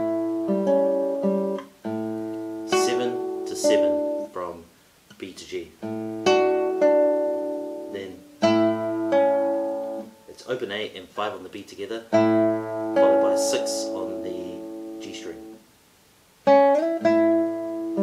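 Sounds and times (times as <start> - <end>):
classical guitar fingerpicked: 0.0 - 4.5, 5.1 - 15.6, 16.4 - 18.0.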